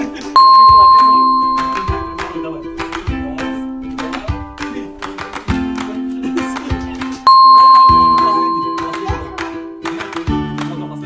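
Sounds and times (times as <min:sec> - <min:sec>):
bright bell ding: 0:00.4 - 0:02.7, 0:07.3 - 0:09.4.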